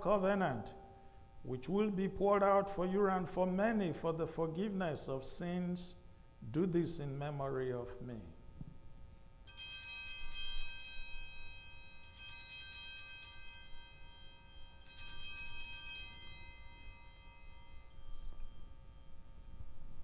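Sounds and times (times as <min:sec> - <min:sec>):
altar bells ringing: 0:09.4 - 0:19.6.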